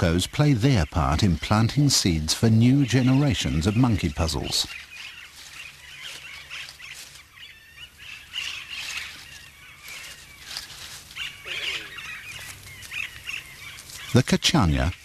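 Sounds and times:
parakeets chirping: 0.0s - 15.0s
parakeet squawk: 11.2s - 14.2s.

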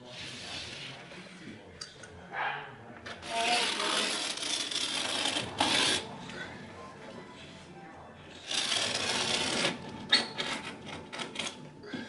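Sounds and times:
blade cutting carpet: 3.2s - 6.1s, 8.4s - 9.8s.

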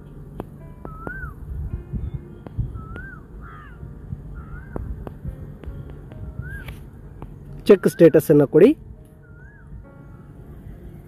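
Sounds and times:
low background rumble: 0.0s - 11.0s
bird calling: 0.8s - 1.4s, 2.0s - 6.8s, 9.2s - 9.8s.

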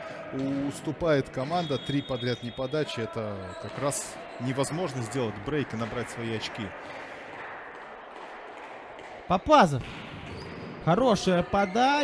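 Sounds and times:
sports hall murmur and hiss: 0.0s - 12.0s.

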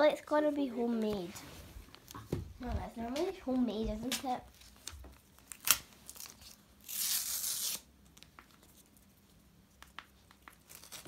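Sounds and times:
paper envelope tearing: 5.4s - 7.9s, 10.6s - 11.0s.

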